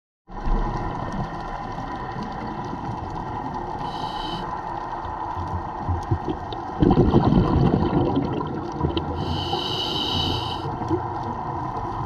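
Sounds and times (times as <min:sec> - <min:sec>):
faint crackling clicks: 0:00.3 - 0:06.8, 0:10.2 - 0:12.0.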